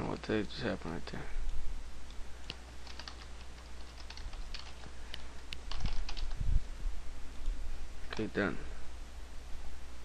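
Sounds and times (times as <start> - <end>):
keyboard typing clicks: 2.5 - 6.4.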